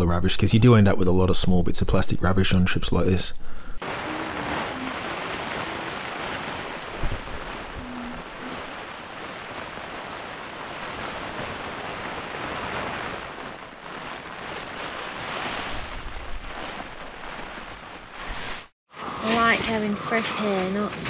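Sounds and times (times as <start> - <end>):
wind and rain on a tent: 3.8 - 18.7.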